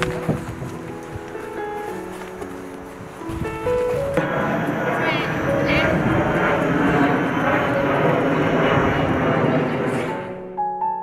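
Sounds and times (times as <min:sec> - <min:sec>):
piano background music: 0:00.0 - 0:11.0.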